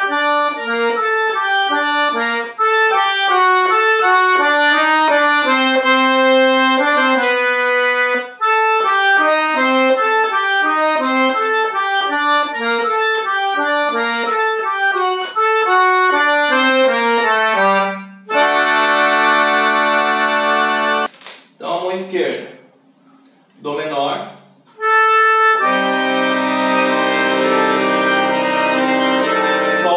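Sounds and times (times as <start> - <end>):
accordion melody: 0.0 - 21.1, 24.7 - 29.9.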